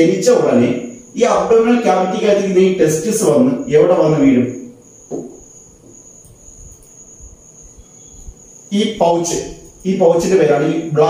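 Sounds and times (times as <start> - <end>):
man talking: 0.0 - 4.6, 8.7 - 11.0.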